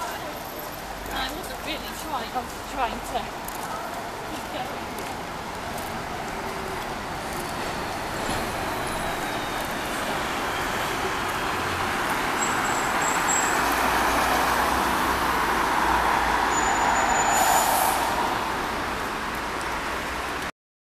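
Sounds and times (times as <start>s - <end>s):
road traffic noise: 0.0s - 20.5s
vehicle passing close by: 13.2s - 19.5s.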